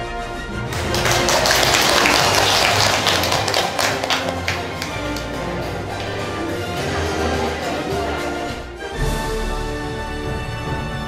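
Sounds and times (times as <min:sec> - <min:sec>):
background music: 0:00.0 - 0:11.0
audience applause: 0:00.6 - 0:08.7.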